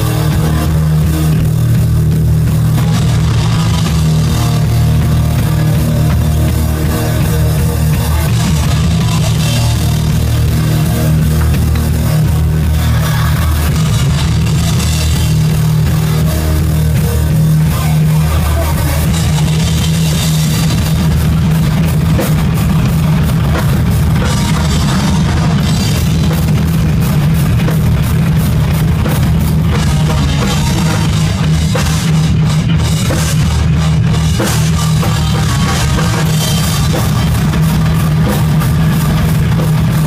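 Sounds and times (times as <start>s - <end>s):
bass drum: 0.0s - 40.0s
distorted electric guitar: 0.0s - 40.0s
heavy metal band playing: 0.0s - 40.0s.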